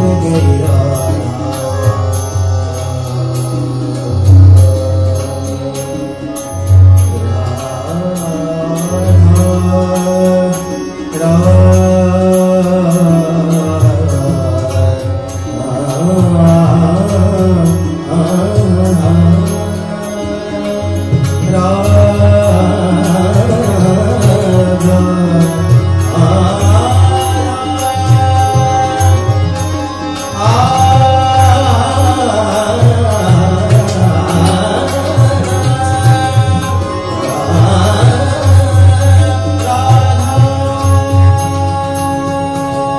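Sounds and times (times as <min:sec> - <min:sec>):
harmonium and keyboard chords: 0:00.0 - 0:42.9
person singing: 0:00.0 - 0:42.9
tabla beat: 0:00.0 - 0:42.9.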